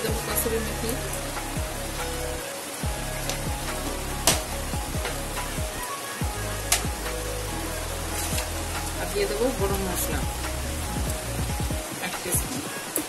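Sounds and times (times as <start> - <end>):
background music: 0.0 - 13.0
spices sizzling in hot oil: 0.0 - 13.0.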